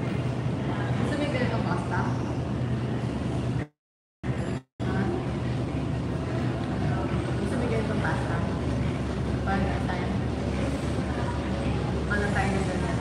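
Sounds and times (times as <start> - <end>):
continuous low hum: 0.0 - 13.0.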